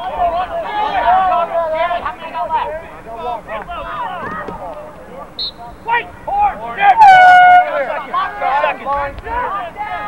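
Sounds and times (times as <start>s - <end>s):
people shouting: 0.0s - 2.6s, 5.8s - 10.0s.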